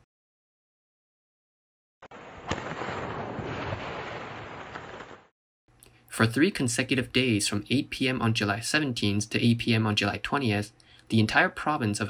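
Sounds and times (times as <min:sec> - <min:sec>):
explosive bang: 0:02.1 - 0:05.3.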